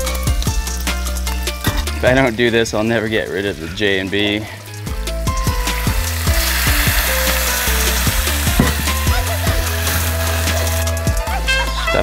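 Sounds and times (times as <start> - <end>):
background music with steady beat: 0.0 - 12.0
apples sizzling in a skillet: 3.6 - 11.2
pan flaring up: 5.5 - 11.0.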